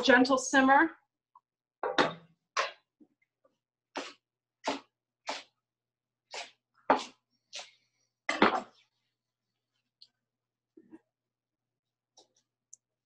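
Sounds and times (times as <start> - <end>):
knife chopping on wooden board: 3.9 - 5.6, 6.3 - 8.6.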